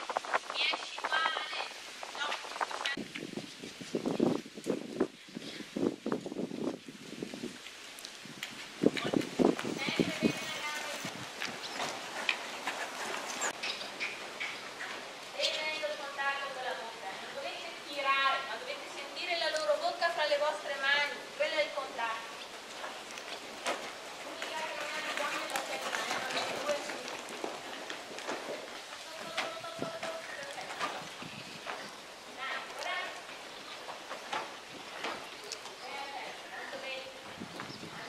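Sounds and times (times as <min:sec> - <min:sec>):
horse hooves on sand: 0:00.0 - 0:38.0.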